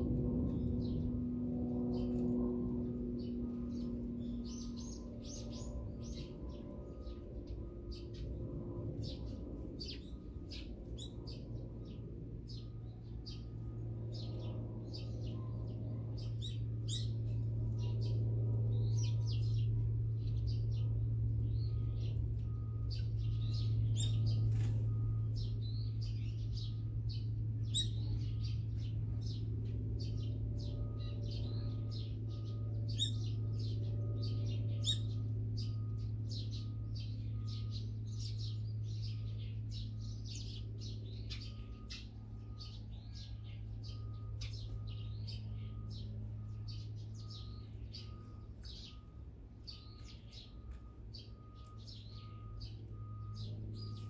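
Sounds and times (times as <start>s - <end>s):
songbirds chirping: 0.0s - 54.0s
steady low hum: 0.0s - 54.0s.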